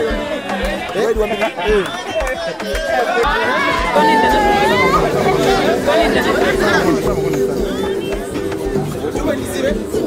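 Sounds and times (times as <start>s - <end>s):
background music bass beat: 0.0s - 10.0s
people chatting: 0.0s - 10.0s.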